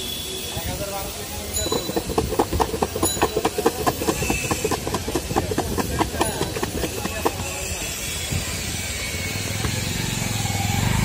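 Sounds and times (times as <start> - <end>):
fruit shaken in plastic jar: 1.6 - 7.7.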